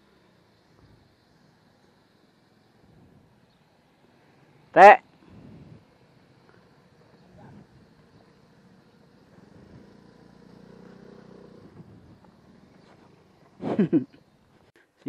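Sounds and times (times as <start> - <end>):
distant scooter engine: 0.0 - 14.7.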